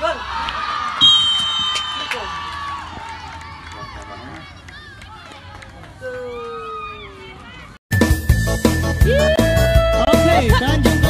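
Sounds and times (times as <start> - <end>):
spectators shouting and cheering: 0.0 - 7.8.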